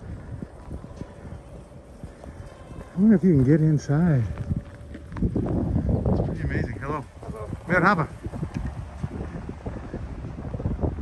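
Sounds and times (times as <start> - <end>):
footsteps on pavement: 0.0 - 9.7.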